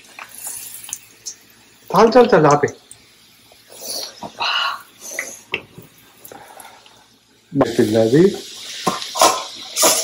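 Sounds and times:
oil sizzling faintly: 0:00.0 - 0:10.0.

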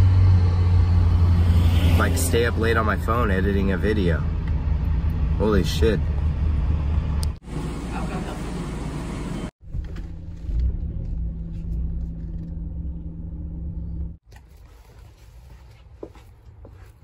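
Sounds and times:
car engine rumbling inside cabin: 0:00.0 - 0:14.2
outdoor background noise: 0:00.0 - 0:17.0.

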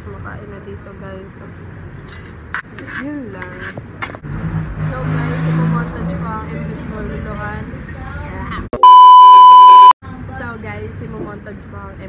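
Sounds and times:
woman speaking: 0:00.0 - 0:01.6
high censor beep: 0:08.8 - 0:10.0.

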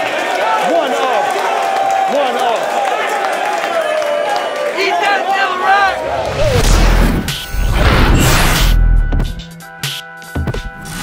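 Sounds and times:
crowd shouting: 0:00.0 - 0:06.8
whooshing sweeps: 0:05.9 - 0:08.9.

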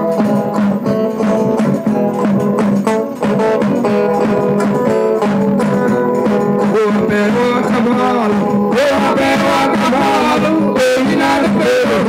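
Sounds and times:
plucked string instruments: 0:00.0 - 0:12.0
voices singing: 0:06.2 - 0:12.0.

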